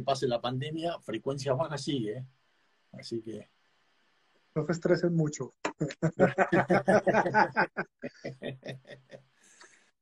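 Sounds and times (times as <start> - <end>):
men laughing: 6.0 - 9.2.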